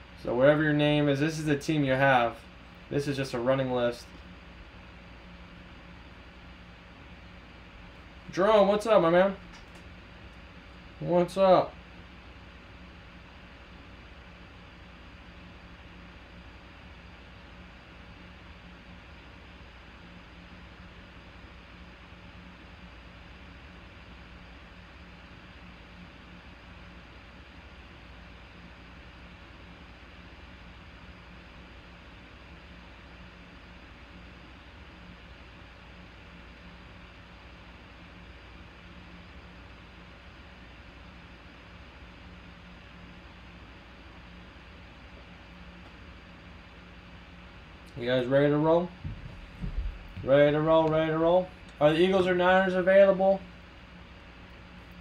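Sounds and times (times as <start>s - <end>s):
faint hiss with low hum: 0.0s - 55.0s.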